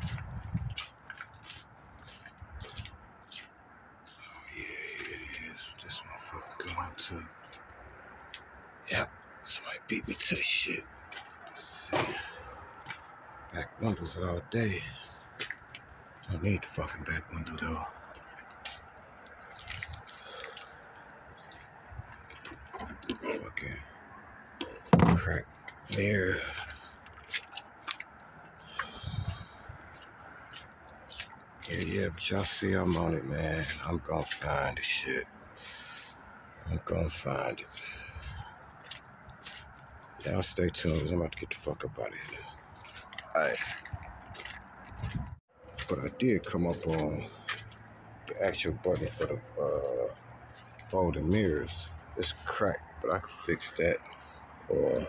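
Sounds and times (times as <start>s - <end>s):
faint scuffs and clicks: 0.0s - 4.2s, 37.7s - 40.2s, 42.5s - 45.9s
man speaking: 4.2s - 7.4s, 8.9s - 10.9s, 11.5s - 12.5s, 13.5s - 15.2s, 16.3s - 18.2s, 22.8s - 23.9s, 24.8s - 26.9s, 28.7s - 29.5s, 31.7s - 35.9s, 36.6s - 38.5s, 40.2s - 42.6s, 43.2s - 43.8s, 45.8s - 47.6s, 48.3s - 50.2s, 50.8s - 55.0s.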